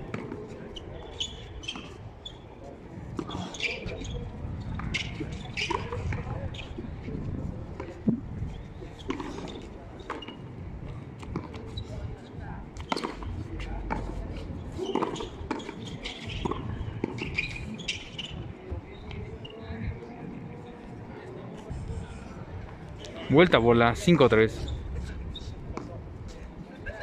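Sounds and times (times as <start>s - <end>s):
players' voices: 0.0s - 27.0s.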